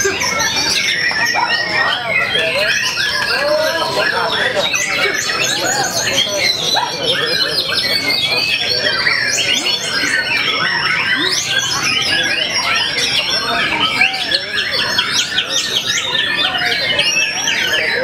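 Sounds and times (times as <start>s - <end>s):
birds singing whistles and trills: 0.0s - 18.0s
people's voices: 0.0s - 18.0s.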